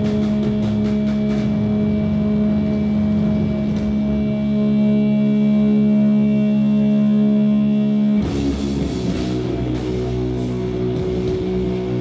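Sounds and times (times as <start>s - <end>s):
rock band droning note: 0.0s - 12.0s.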